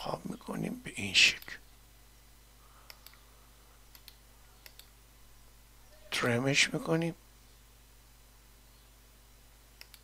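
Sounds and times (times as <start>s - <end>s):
low steady hum: 0.0s - 10.0s
computer mouse clicks: 2.8s - 3.2s, 3.9s - 4.9s, 9.8s - 10.0s.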